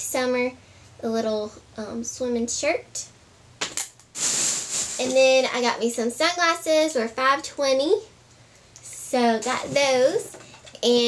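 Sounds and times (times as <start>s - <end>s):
clothing and shopping rustling: 4.1s - 6.0s, 9.2s - 10.9s.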